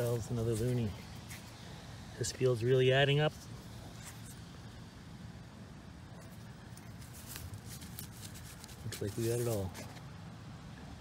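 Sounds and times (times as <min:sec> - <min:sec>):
grass and soil rustling: 0:00.0 - 0:04.9, 0:06.1 - 0:10.2
soft soil crackles: 0:00.0 - 0:04.9, 0:06.1 - 0:10.2.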